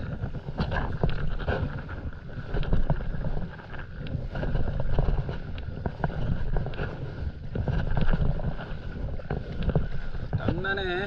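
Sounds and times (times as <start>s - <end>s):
water splashing and sloshing: 0.0s - 11.0s
wind rumbling on microphone: 0.0s - 11.0s.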